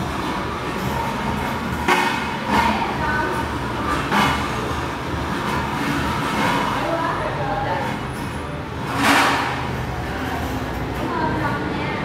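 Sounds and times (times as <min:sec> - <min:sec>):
metallic clatter: 0:00.0 - 0:07.2, 0:07.8 - 0:11.5
metal stools scraping on tiled floor: 0:00.0 - 0:11.6.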